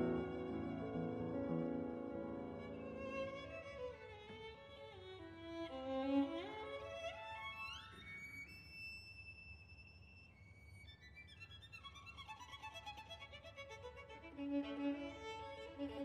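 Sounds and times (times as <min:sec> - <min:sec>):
solo violin: 0:00.0 - 0:16.0.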